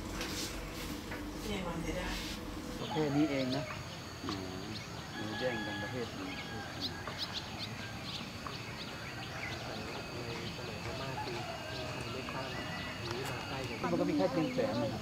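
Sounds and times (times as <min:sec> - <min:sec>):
faint people's voices: 0:08.4 - 0:15.0.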